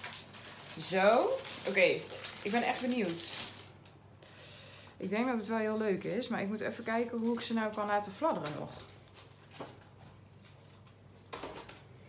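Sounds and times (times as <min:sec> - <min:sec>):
tissue paper rustling: 0:00.0 - 0:03.8
faint hum: 0:00.0 - 0:12.0.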